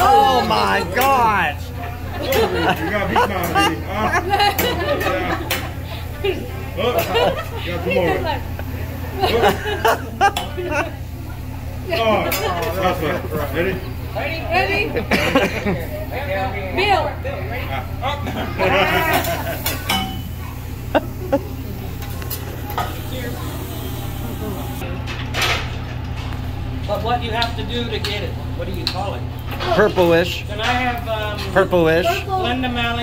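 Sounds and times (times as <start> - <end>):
faint voices: 0.0 - 25.0
steady low hum: 0.0 - 25.1
background chatter: 0.0 - 33.0.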